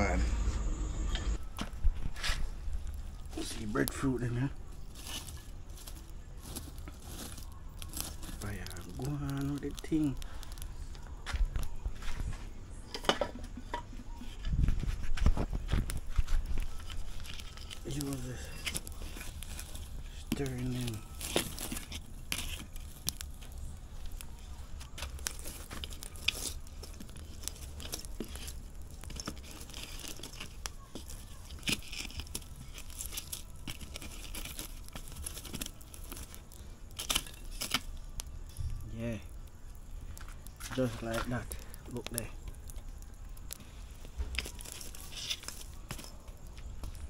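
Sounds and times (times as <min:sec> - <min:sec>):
wood fire crackling: 0:00.0 - 0:47.0
sharp pops from fire: 0:01.4 - 0:47.0.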